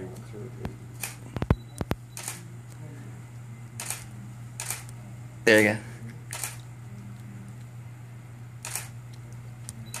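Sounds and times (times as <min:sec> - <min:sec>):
camera shutter clicks: 0:02.2 - 0:02.4, 0:03.8 - 0:04.0, 0:04.6 - 0:04.9, 0:06.3 - 0:06.6, 0:08.6 - 0:09.0.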